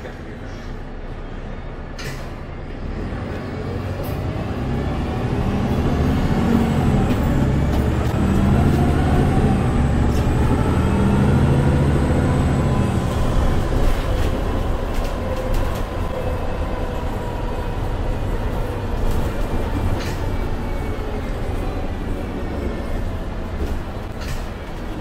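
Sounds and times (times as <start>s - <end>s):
bus diesel engine rumble and whine: 0.0s - 25.0s.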